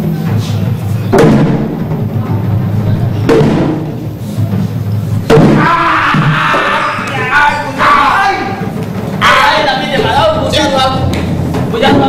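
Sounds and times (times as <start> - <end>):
heavy drum strikes: 0.0 - 12.0.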